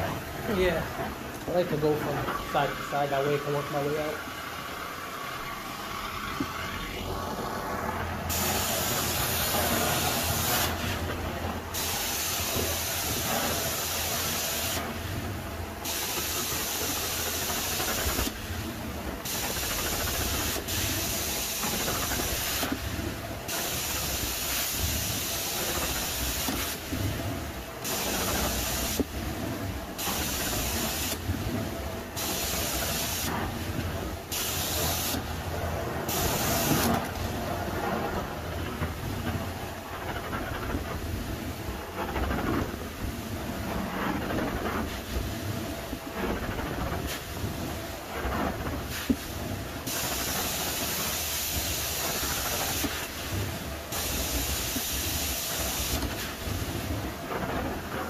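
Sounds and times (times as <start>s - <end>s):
vacuum drone: 0.0s - 45.3s
spray jets hissing: 8.3s - 10.9s, 11.7s - 14.8s, 23.5s - 26.9s, 34.3s - 35.2s, 36.1s - 37.0s.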